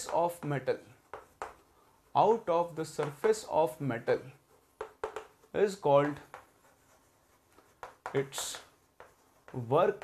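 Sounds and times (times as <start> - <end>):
chalk tapping and scraping: 0.0 - 10.0.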